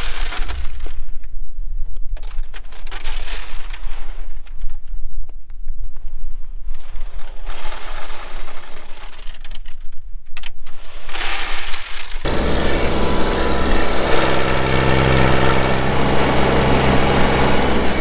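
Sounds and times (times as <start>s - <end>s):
tractor engine drone: 12.3s - 18.0s.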